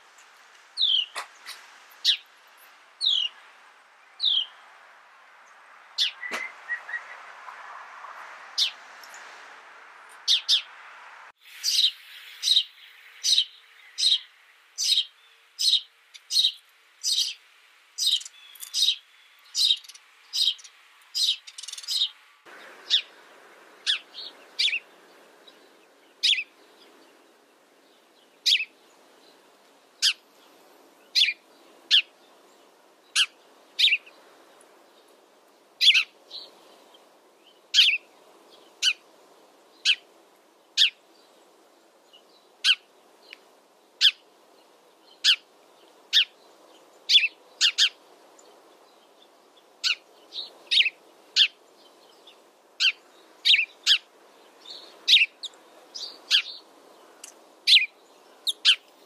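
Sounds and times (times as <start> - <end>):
faint steady hiss: 0.0 - 59.0
sparrow chirping: 0.8 - 3.5, 4.1 - 4.7, 5.5 - 7.3, 8.6 - 9.3, 10.2 - 10.8, 11.4 - 29.3, 30.0 - 34.7, 35.8 - 39.0, 39.7 - 40.1, 40.8 - 41.4, 42.0 - 43.4, 44.0 - 44.3, 45.0 - 59.0.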